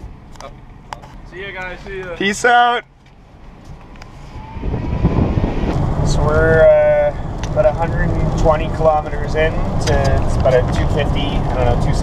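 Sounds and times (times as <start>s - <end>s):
van engine and road noise: 0.0s - 12.0s
faint rising whine: 3.6s - 8.2s.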